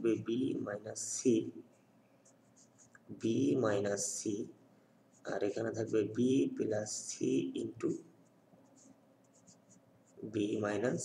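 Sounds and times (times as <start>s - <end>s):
marker scratching on paper: 1.3s - 4.5s, 5.1s - 7.2s, 7.8s - 11.0s.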